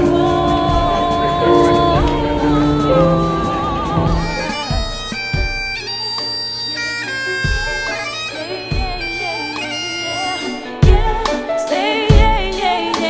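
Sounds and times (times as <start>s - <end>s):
low thumps: 0.0s - 5.8s
bagpipes playing: 0.0s - 10.8s.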